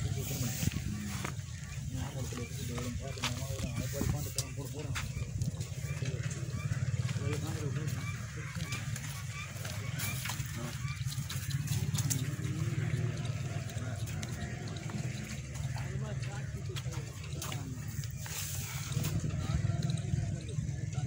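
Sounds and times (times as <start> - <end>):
indistinct voices: 0.0 - 21.0.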